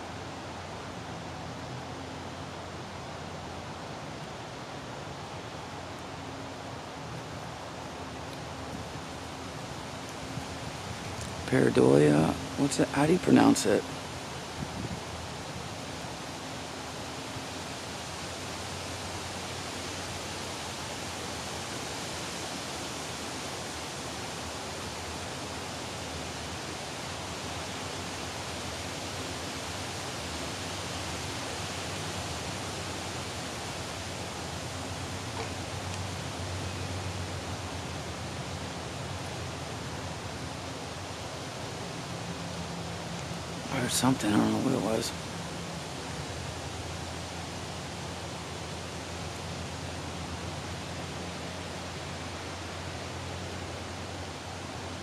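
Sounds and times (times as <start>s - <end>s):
forest rushing noise: 0.0s - 55.0s.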